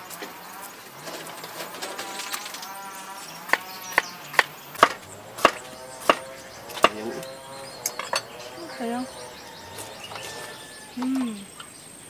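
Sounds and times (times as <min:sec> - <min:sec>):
sharp ringing knocks: 0:03.5 - 0:07.2.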